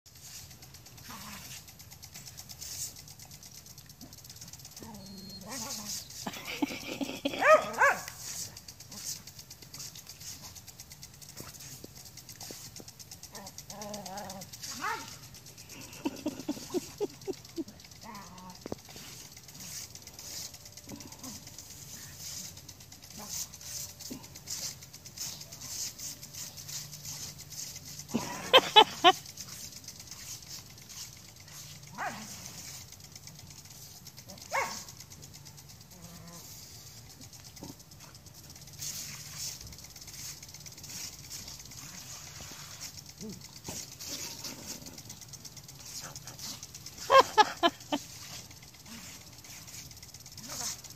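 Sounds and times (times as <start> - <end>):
lawn sprinkler ticking: 0.1 - 50.9
dog yelping: 4.8 - 6.1, 7.3 - 8.3, 13.4 - 15.2, 31.9 - 32.3, 34.3 - 34.9, 47.1 - 47.8
dog whining: 4.8 - 6.4, 7.2 - 8.2
dog barking: 7.4 - 8.2, 14.7 - 15.1, 31.9 - 32.3, 34.3 - 34.9.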